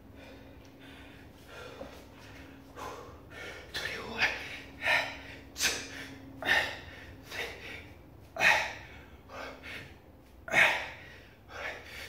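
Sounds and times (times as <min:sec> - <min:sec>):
man breathing hard: 0:00.0 - 0:12.0.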